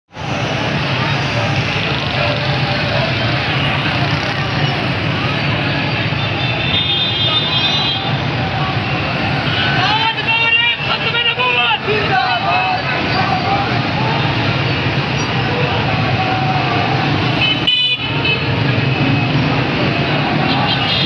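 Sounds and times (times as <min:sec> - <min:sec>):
people's voices: 0:00.1 - 0:21.0
street traffic engines: 0:00.1 - 0:21.0.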